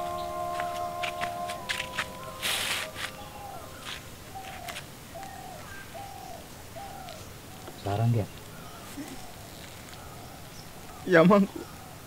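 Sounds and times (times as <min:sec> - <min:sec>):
bird calling: 0:00.0 - 0:12.0.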